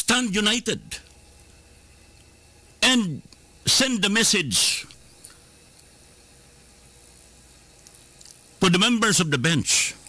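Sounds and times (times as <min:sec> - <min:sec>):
faint hiss: 0:00.0 - 0:10.0
tiny ticks: 0:07.8 - 0:08.5.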